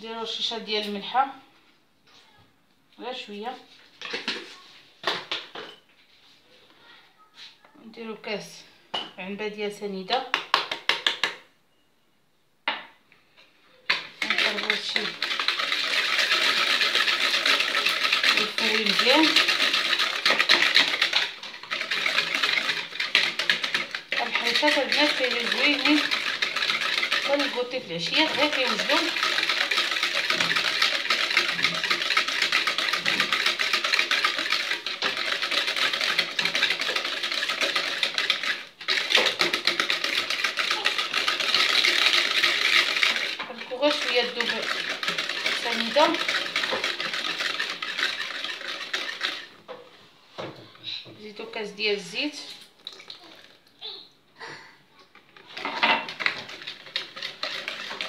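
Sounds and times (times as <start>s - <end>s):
whisk beating eggs in plastic bowl: 13.9s - 49.9s, 55.1s - 58.0s.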